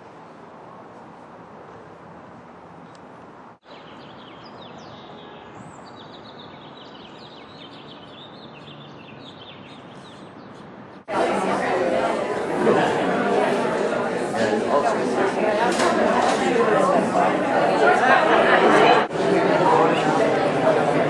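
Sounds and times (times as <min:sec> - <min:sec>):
small birds chirping: 0:03.6 - 0:11.1
audience chattering: 0:11.1 - 0:21.0.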